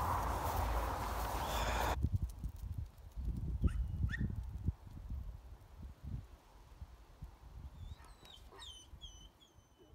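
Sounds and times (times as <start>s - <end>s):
small dog yipping: 3.6s - 4.3s, 7.8s - 9.9s.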